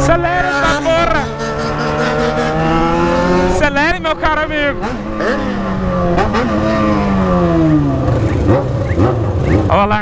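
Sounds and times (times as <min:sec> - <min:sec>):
motorcycle engine revs falling: 0:00.0 - 0:10.0
motorcycle engines running: 0:00.0 - 0:10.0
road and wind rumble: 0:00.0 - 0:10.0.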